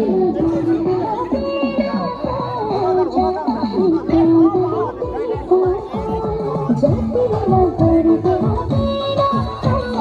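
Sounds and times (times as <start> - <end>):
background music: 0.0 - 10.0
young people chattering: 0.0 - 10.0.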